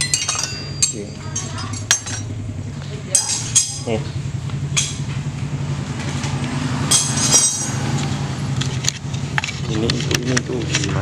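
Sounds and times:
sharp metallic clink: 0.0s - 2.3s, 3.1s - 3.9s, 6.9s - 7.8s
low mechanical hum: 0.0s - 11.0s.

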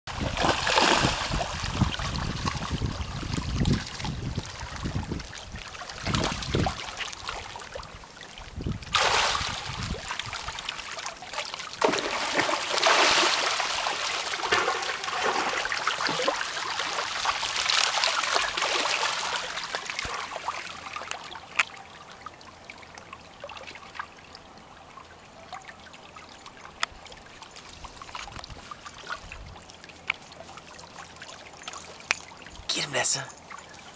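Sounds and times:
fish splashing in shallow water: 0.1s - 32.5s.

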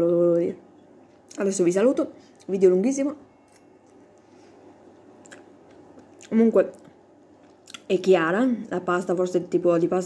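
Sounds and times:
woman's voice: 0.0s - 0.6s, 1.3s - 3.3s, 6.2s - 6.9s, 7.7s - 10.0s
low room noise: 0.0s - 10.0s.

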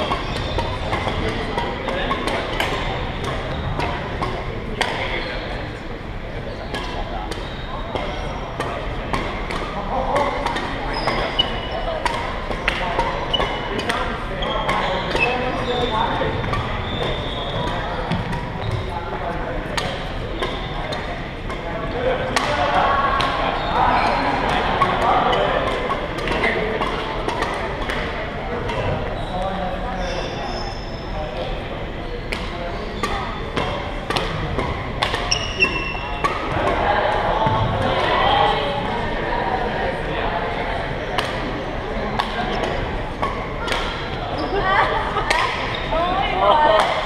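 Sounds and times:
spectators chattering: 0.0s - 47.0s
badminton rackets striking shuttlecock: 0.1s - 5.0s, 6.7s - 14.0s, 19.8s - 21.6s, 22.3s - 23.4s, 32.3s - 36.8s, 42.2s - 44.1s.

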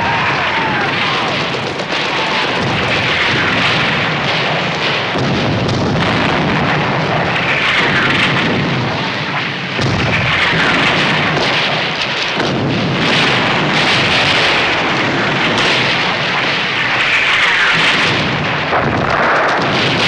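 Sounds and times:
shellfire and explosions: 0.0s - 20.0s.

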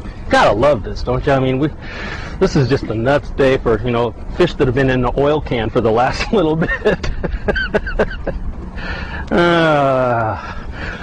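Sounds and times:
man laughing: 6.2s - 8.5s, 9.2s - 10.7s.

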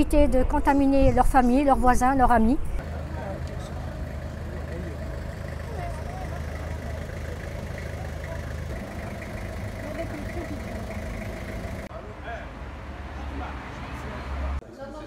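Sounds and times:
low engine hum: 2.8s - 11.9s
faint voices talking: 2.8s - 15.0s.

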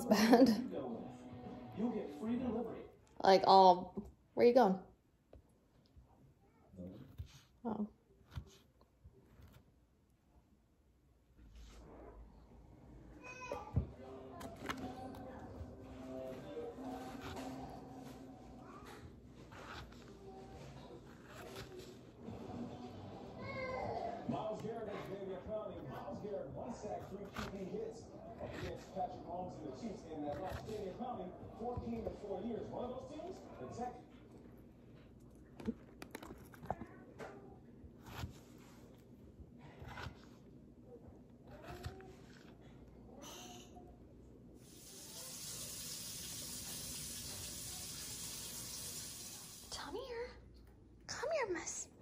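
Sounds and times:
kitchen tap running: 44.6s - 49.7s.

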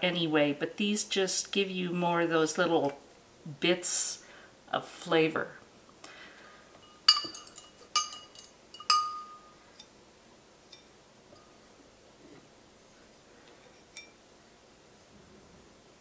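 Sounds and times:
knife clinking on glass jar: 6.8s - 9.9s, 13.8s - 14.2s.

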